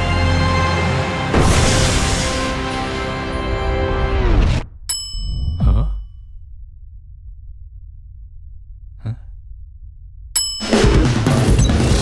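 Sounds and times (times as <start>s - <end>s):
low hum: 4.7s - 10.6s
bright ringing ting: 4.9s - 5.6s, 10.4s - 10.9s.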